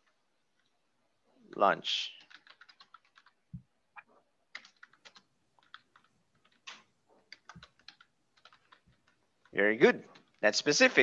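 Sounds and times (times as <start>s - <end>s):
computer keyboard typing: 2.2s - 3.6s, 4.5s - 10.4s.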